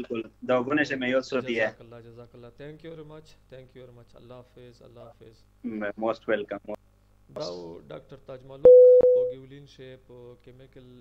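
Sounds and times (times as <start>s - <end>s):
loud steady single-pitch beep: 8.7s - 9.4s.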